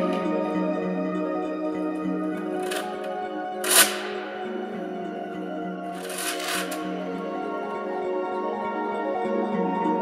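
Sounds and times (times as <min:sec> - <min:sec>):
ambient music with held tones: 0:00.0 - 0:10.0.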